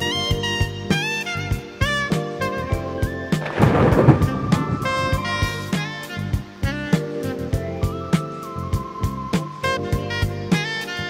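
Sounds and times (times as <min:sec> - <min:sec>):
upbeat music with horns: 0:00.0 - 0:11.0
rumbling crash sound effect: 0:03.4 - 0:05.8.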